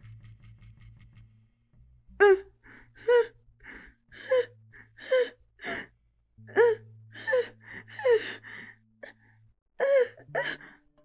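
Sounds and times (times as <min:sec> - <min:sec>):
woman gasping in pain: 0:02.2 - 0:05.9, 0:06.5 - 0:09.2, 0:09.8 - 0:10.8.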